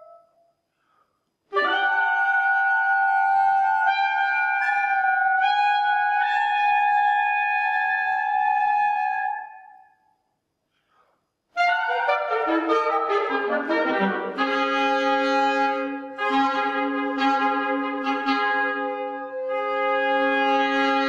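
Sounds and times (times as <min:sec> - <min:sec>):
classical chamber music: 0:11.6 - 0:21.0.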